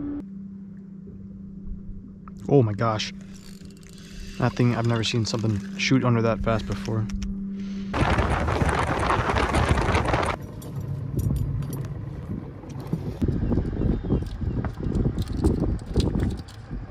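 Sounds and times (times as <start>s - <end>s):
wind rushing over microphone: 7.9s - 10.4s, 12.2s - 16.9s.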